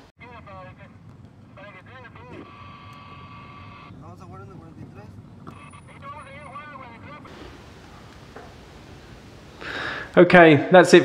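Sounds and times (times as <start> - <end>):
held electronic tone: 5.4 - 7.3
garbled sped-up voice chatter: 5.5 - 7.3
static hiss: 7.2 - 10.3.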